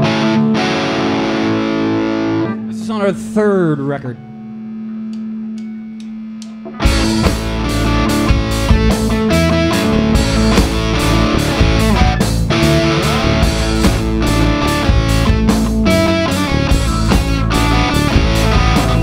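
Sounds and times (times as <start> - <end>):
held electric guitar note: 0.0 - 19.0
rock band playing: 0.0 - 19.0.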